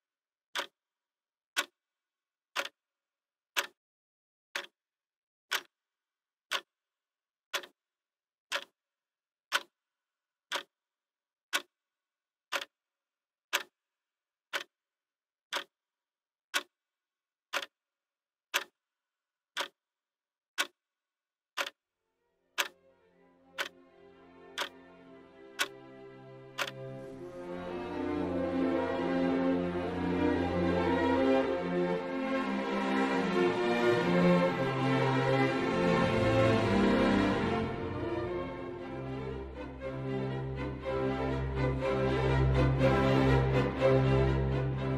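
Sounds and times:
clock ticking: 0.5 - 0.8, 1.5 - 1.8, 2.5 - 2.8, 3.5 - 3.8, 4.5 - 4.8, 5.5 - 5.8, 6.5 - 6.7, 7.5 - 7.8, 8.5 - 8.8, 9.5 - 9.8, 10.5 - 10.8, 11.5 - 11.8, 12.5 - 12.8, 13.5 - 13.8, 14.5 - 14.8, 15.5 - 15.8, 16.5 - 16.8, 17.5 - 17.8, 18.5 - 18.8, 19.5 - 19.8, 20.6 - 20.8, 21.6 - 21.8, 22.6 - 22.8, 23.5 - 44.9
music: 22.1 - 44.9.

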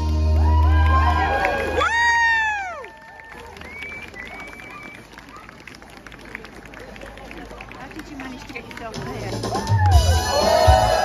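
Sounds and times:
low street hum: 0.0 - 10.0.

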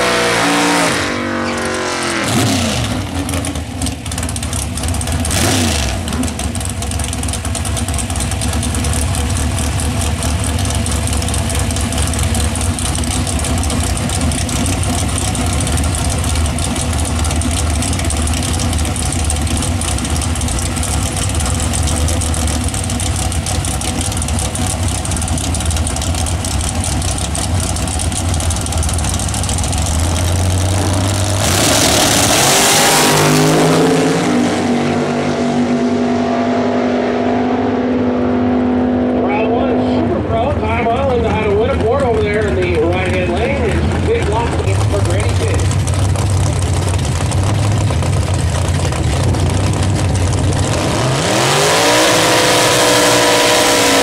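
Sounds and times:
drag racing engines revving: 0.0 - 54.0
loud engines idling: 0.0 - 54.0.

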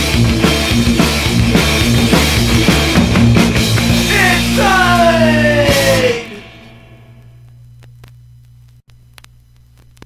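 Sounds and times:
punk song: 0.0 - 7.4
faint vinyl clicks: 7.4 - 10.0.

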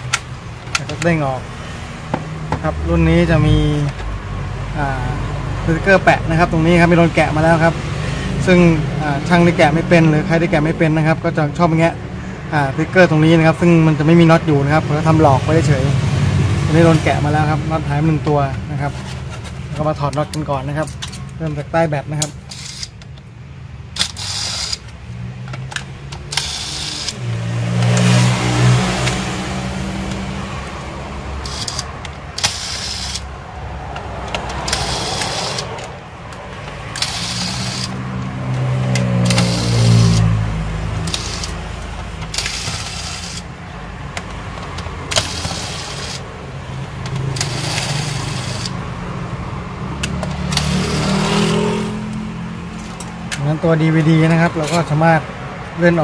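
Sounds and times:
electric screwdriver motor whirring: 24.0 - 25.0, 26.2 - 27.2, 31.4 - 33.3, 34.5 - 35.9, 36.9 - 38.1, 39.0 - 40.3, 41.0 - 41.7, 42.3 - 43.5, 45.1 - 46.3, 47.1 - 48.8
sharp clicks and taps: 28.9 - 29.4, 31.4 - 37.2.

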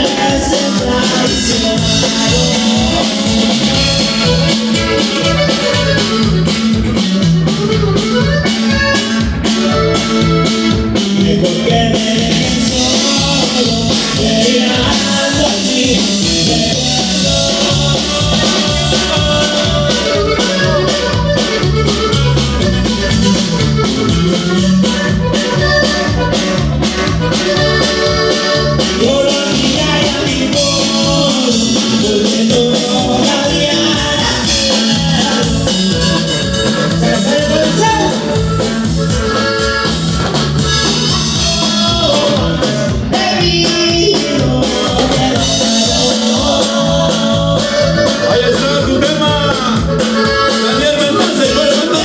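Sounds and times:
drum kit steady beat: 0.0 - 52.0
reedy accordion lead: 0.0 - 52.0
sustained keyboard-like melody: 0.0 - 52.0.

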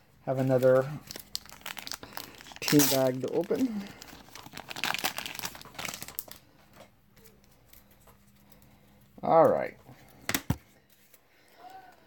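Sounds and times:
plastic bag crackling: 0.4 - 6.4.

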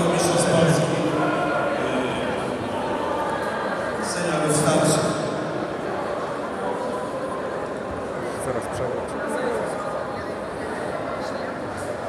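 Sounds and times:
murmur of voices in echoing hall: 0.0 - 12.0.

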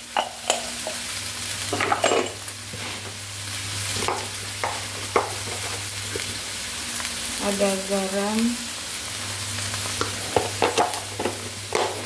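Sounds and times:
bean sprouts sizzling in pan: 0.0 - 12.0
spatula scraping pan: 10.0 - 12.0.

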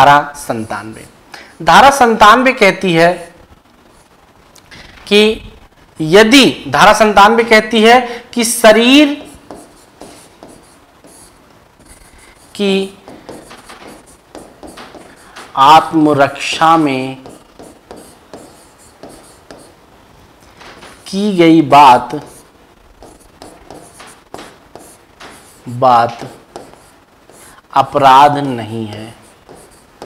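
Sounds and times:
pen writing on display board: 9.0 - 19.8, 22.1 - 27.6, 28.4 - 30.0.

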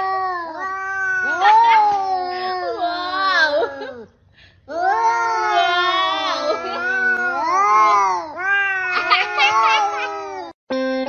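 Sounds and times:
cat yowling: 0.0 - 4.0, 4.7 - 10.5.

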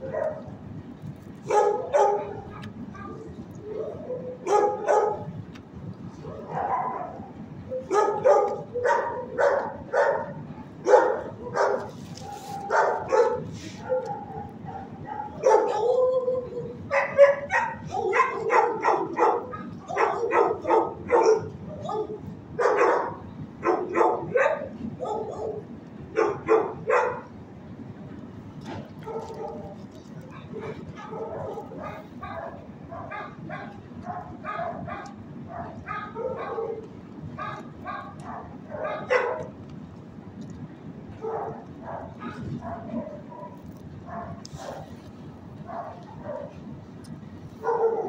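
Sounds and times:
dogs barking: 0.0 - 0.6, 1.4 - 5.4, 6.2 - 27.4, 28.8 - 39.6, 41.2 - 46.8, 47.5 - 48.0.

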